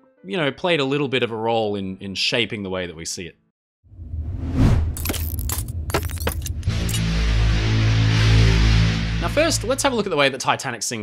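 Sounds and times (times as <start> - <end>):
sharp clicks and hits: 4.9 - 7.2.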